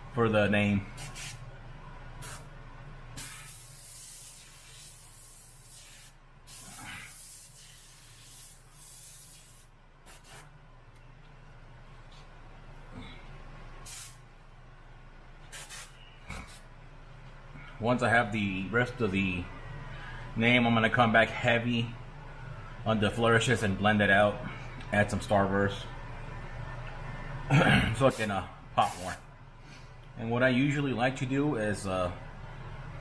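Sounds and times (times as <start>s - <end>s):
steady low hum: 0.0s - 33.0s
airbrush spraying paint: 1.0s - 1.4s, 2.2s - 2.5s, 3.2s - 10.5s, 13.8s - 14.2s, 15.4s - 16.7s, 28.1s - 29.2s.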